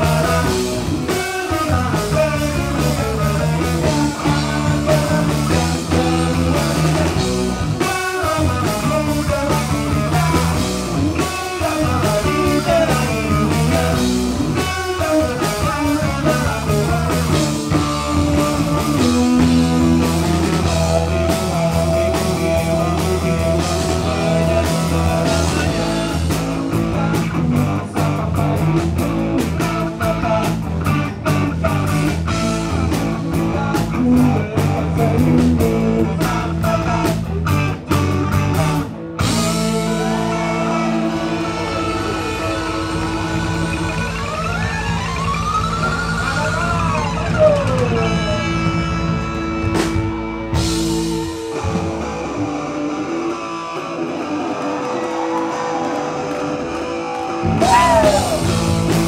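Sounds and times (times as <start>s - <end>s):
electric guitars: 0.0s - 59.0s
live rock band playing: 0.0s - 59.0s
fast even drum beat: 57.5s - 59.0s.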